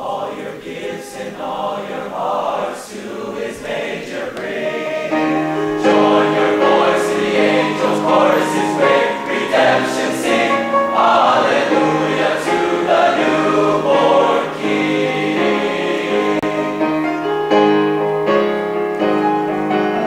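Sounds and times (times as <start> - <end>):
male choir singing in harmony: 0.0 - 17.3.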